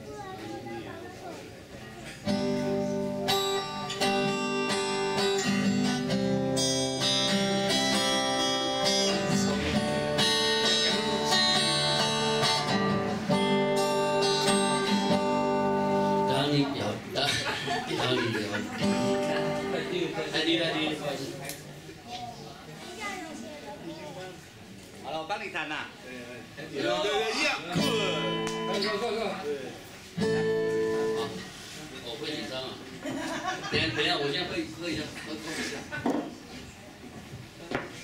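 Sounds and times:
acoustic guitar chords: 0:02.2 - 0:17.0, 0:18.8 - 0:21.0, 0:27.7 - 0:29.3, 0:30.1 - 0:31.6.

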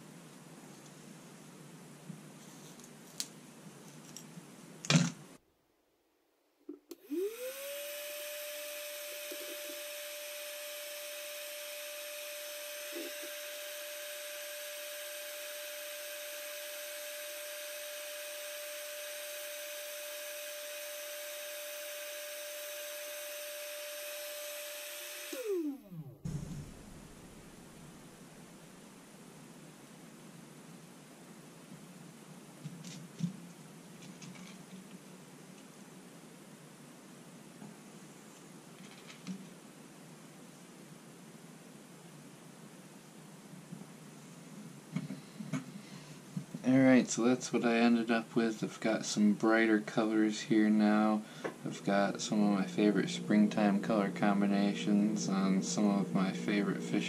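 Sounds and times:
heat gun fan whining and hissing: 0:06.9 - 0:28.8, 0:45.0 - 0:57.0.

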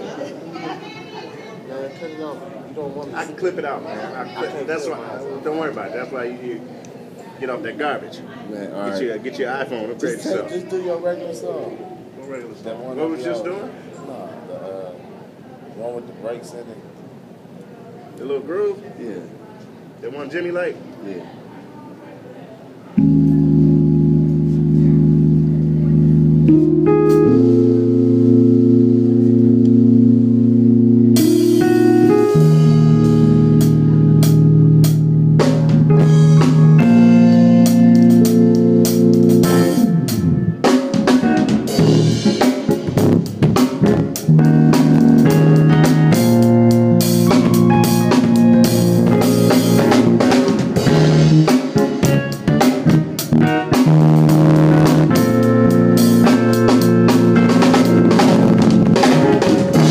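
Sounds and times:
organ-style keyboard chords: 0:22.9 - 0:59.9
drum kit playing: 0:23.0 - 0:59.9.

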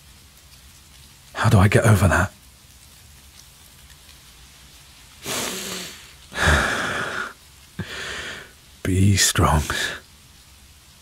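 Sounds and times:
rain pattering: 0:00.0 - 0:11.0.

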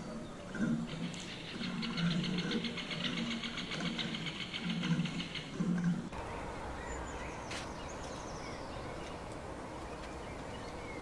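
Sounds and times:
sparrows chirping: 0:06.2 - 0:11.0.

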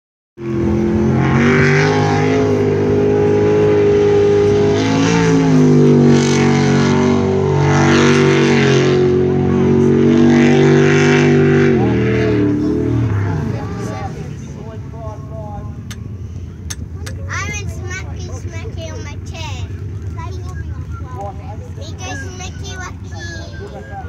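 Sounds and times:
boat engine at high revs: 0:00.4 - 0:24.0.

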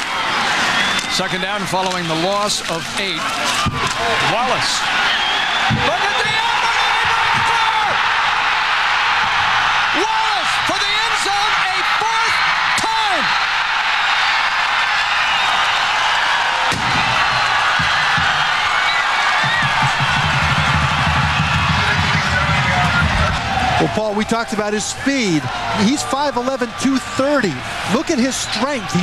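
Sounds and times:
crowd shouting calls: 0:00.0 - 0:29.0
stadium crowd cheering: 0:00.0 - 0:29.0
music: 0:19.4 - 0:23.4.

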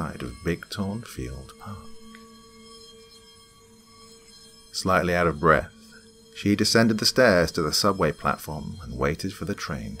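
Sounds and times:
faint ambient drone music: 0:00.0 - 0:10.0.

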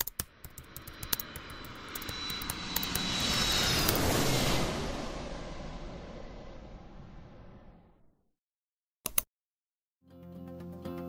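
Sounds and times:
sharp clicks: 0:00.0 - 0:04.1
jet airliner cabin noise: 0:00.2 - 0:06.5.

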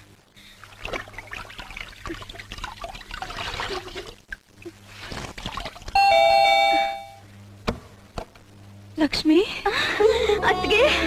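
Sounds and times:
two-tone doorbell ringing: 0:06.0 - 0:07.2.

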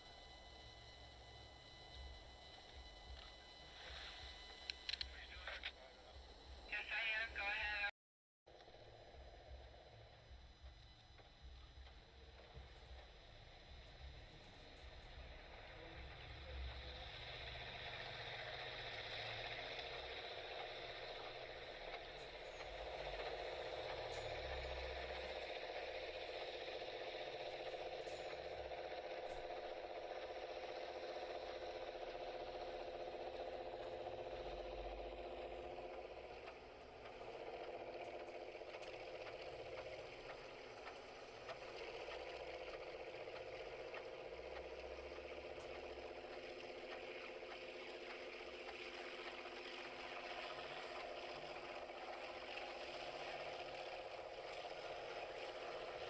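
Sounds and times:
locomotive engine drone with rattle: 0:00.0 - 0:07.9, 0:08.5 - 0:56.0.

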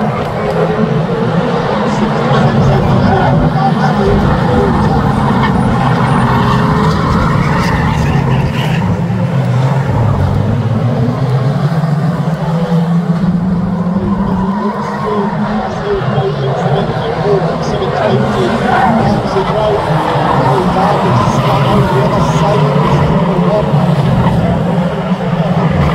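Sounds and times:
racing car engines droning: 0:00.0 - 0:25.9.

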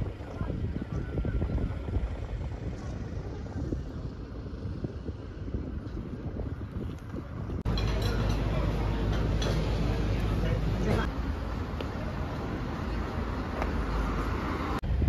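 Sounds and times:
wind buffeting microphone: 0:00.0 - 0:11.1, 0:12.2 - 0:15.0
low rumble of ferry engine: 0:00.0 - 0:15.0.

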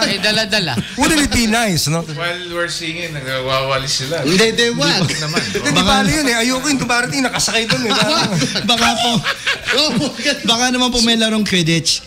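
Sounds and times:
men laughing: 0:00.0 - 0:01.5, 0:04.3 - 0:10.6
men speaking: 0:00.0 - 0:12.0.

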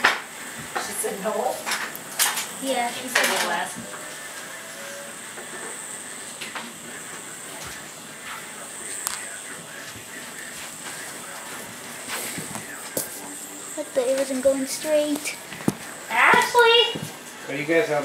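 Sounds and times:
high whine: 0:00.0 - 0:18.0.

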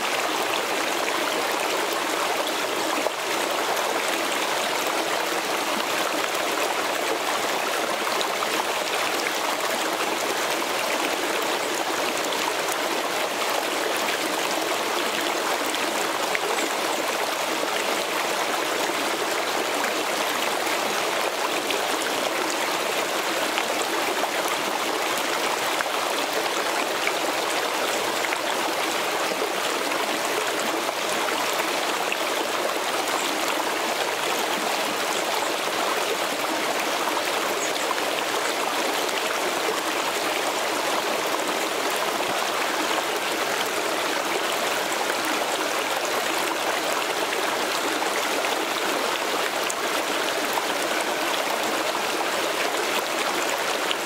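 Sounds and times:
creek flowing over rocks: 0:00.0 - 0:54.0.

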